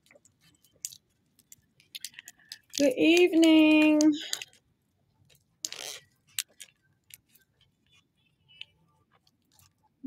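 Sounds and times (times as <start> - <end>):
eyeglasses handling rustle: 0.2 - 4.6, 5.2 - 8.0.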